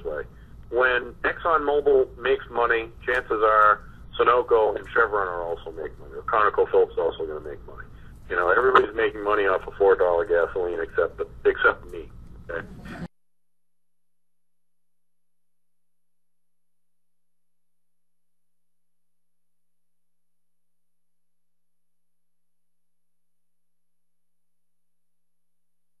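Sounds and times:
faint electronic hum: 0.0 - 13.1.

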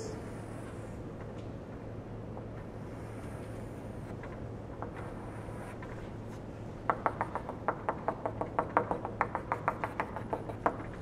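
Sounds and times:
low steady hum: 0.0 - 11.0
chalk tapping on blackboard: 6.8 - 11.0.

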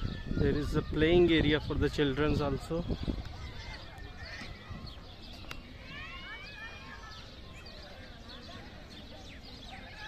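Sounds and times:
wind rumble on microphone: 0.0 - 5.3.

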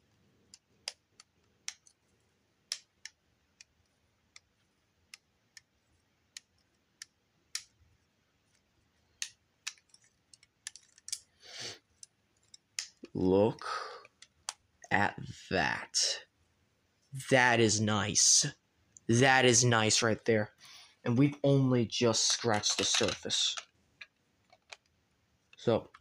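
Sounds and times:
plastic bricks clicking: 22.2 - 24.9.

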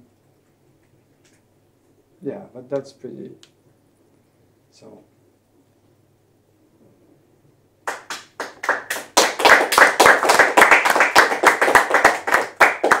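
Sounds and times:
small group applauding: 7.8 - 13.0.

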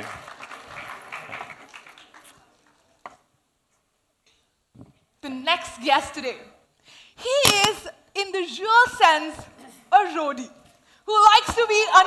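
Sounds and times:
audience applause: 0.0 - 2.9.

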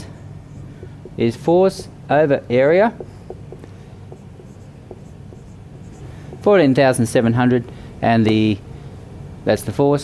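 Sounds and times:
marker squeaking on whiteboard: 0.5 - 2.0, 2.9 - 6.6.

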